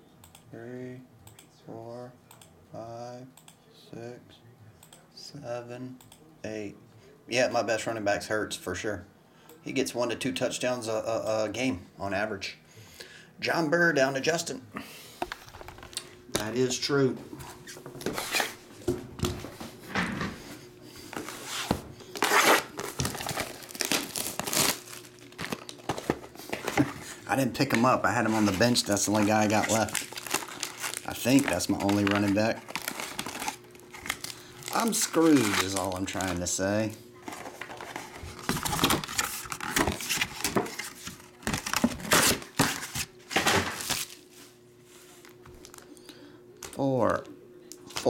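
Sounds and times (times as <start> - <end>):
plastic wrap crinkling and tearing: 22.1 - 36.5, 37.2 - 44.3.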